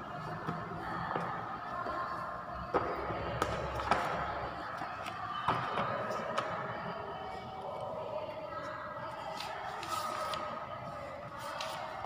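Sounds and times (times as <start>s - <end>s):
indistinct background voices: 0.0s - 12.0s.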